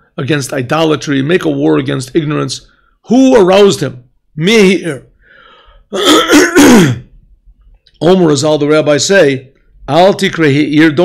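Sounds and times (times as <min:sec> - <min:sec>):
man clearing his throat: 0:05.9 - 0:07.2.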